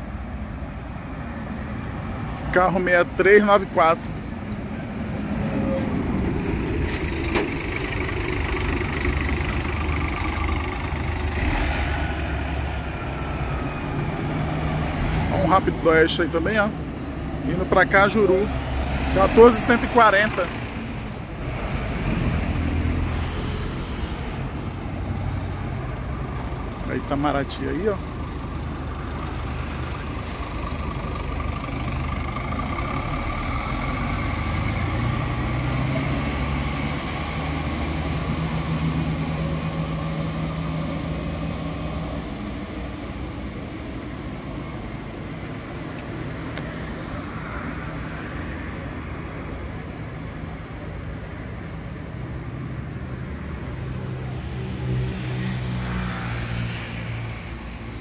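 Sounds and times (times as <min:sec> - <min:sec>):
bus engine: 0:00.0 - 0:58.0
steady traffic rumble: 0:00.0 - 0:58.0.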